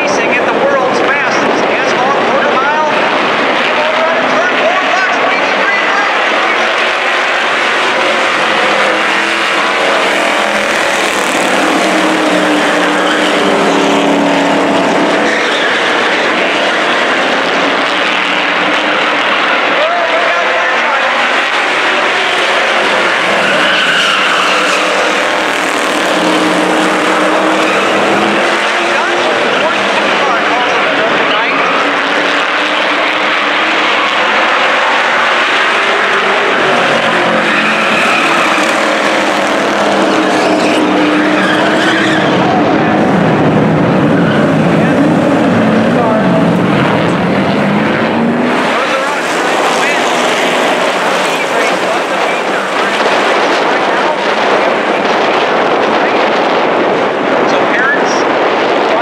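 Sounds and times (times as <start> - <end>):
race car engines: 0.0 - 59.0.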